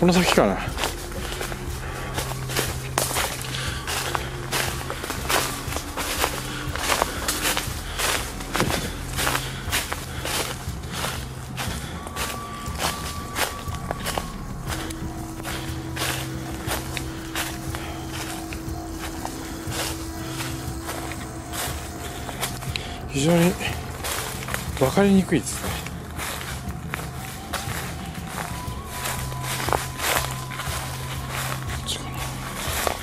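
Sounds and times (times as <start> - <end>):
faint steady tone: 0.0 - 33.0
footsteps on dry leaves: 0.0 - 33.0.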